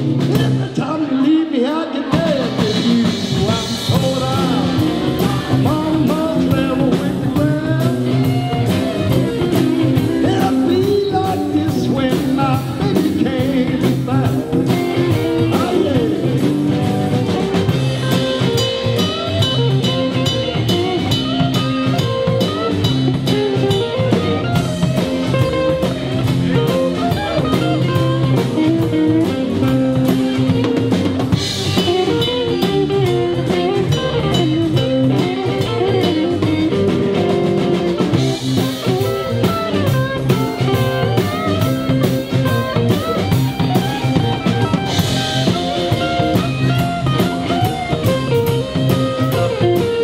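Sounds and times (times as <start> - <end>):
drum kit beat: 0.0 - 1.2, 1.9 - 50.0
electric guitar: 0.0 - 50.0.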